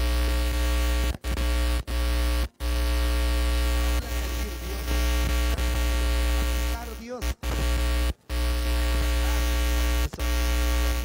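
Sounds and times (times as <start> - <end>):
buzzing pa system: 0.0 - 11.0
distorted keyboard drone: 0.0 - 11.0
heavy low hum: 0.0 - 11.0.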